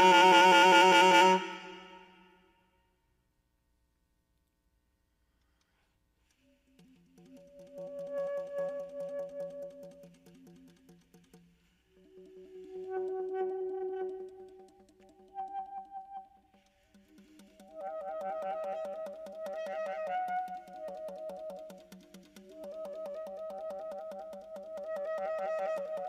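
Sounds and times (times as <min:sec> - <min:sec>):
saxophone playing sustained notes: 0:00.0 - 0:02.5, 0:12.0 - 0:16.4.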